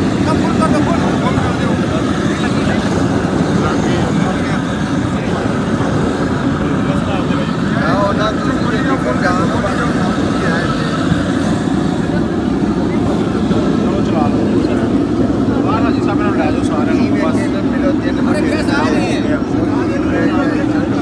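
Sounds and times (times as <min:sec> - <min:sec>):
men talking: 0:00.0 - 0:21.0.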